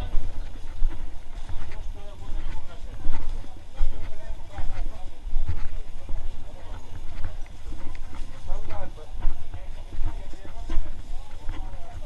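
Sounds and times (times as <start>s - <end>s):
footsteps on pavement: 0.0s - 12.0s
low microphone rumble: 0.0s - 12.0s
people chattering: 0.0s - 12.0s.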